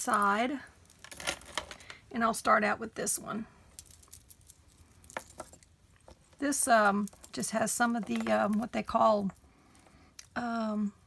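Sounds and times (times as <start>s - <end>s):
glass beads and chain clicking: 3.7s - 9.9s.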